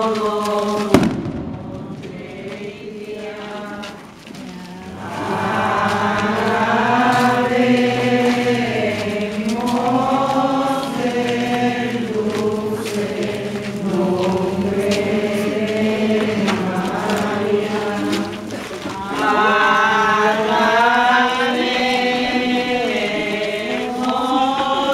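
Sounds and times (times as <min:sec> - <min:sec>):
crowd singing a hymn in unison: 0:00.0 - 0:24.9.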